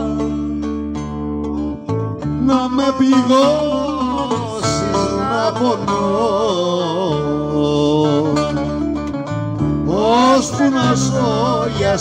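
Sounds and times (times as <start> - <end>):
plucked strings: 0.0 - 12.0
person singing: 2.4 - 8.8, 9.8 - 12.0.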